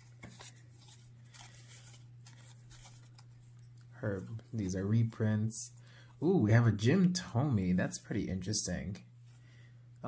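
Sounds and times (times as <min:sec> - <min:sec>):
cardboard cards flipped by hand: 0:00.0 - 0:03.9
low steady hum: 0:00.0 - 0:10.0.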